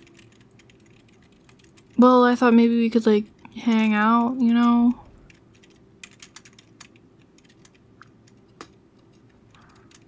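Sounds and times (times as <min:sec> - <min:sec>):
computer keyboard clicking: 0:00.0 - 0:02.0, 0:04.2 - 0:10.0.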